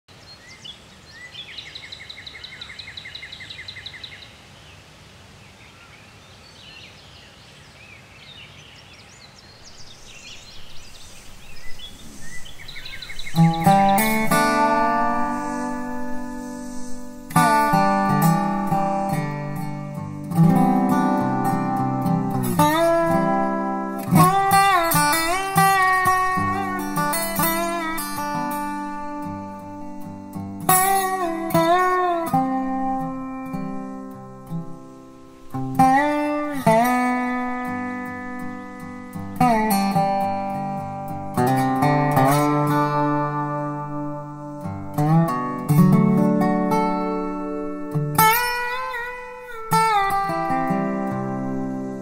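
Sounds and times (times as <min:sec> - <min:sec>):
bird trilling: 0:08.7 - 0:18.4
fingerpicked resophonic guitar: 0:09.9 - 0:52.0.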